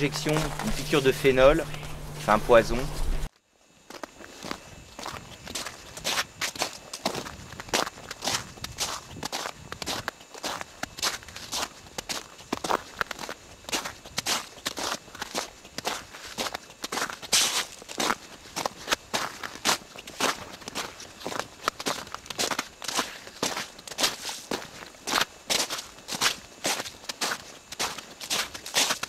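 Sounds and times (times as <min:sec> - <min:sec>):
footsteps on snow: 0:00.0 - 0:03.3, 0:03.9 - 0:29.0.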